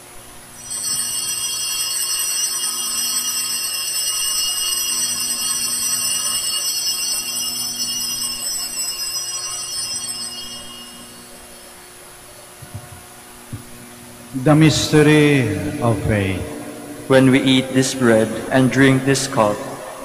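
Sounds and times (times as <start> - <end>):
altar bells ringing: 0.6 - 12.6.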